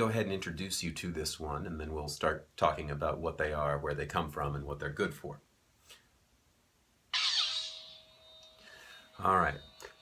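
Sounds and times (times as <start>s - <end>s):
lightsaber ignition: 7.2s - 8.3s
electronic hum with held tone: 7.2s - 10.0s.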